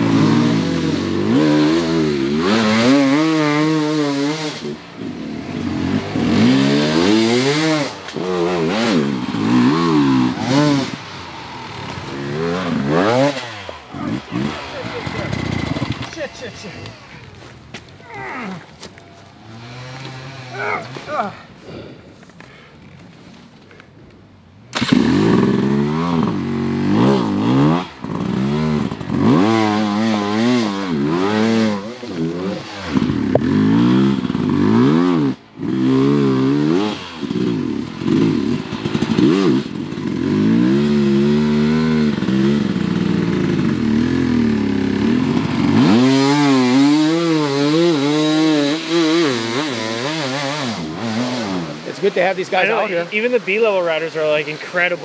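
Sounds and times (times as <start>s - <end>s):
dirt bike engine revving: 0.0s - 21.8s, 24.6s - 55.0s.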